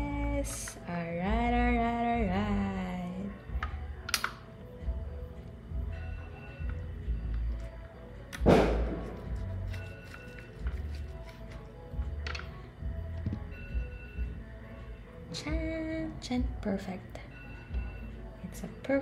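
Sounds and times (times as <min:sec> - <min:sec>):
quiet background music: 0:00.0 - 0:19.0.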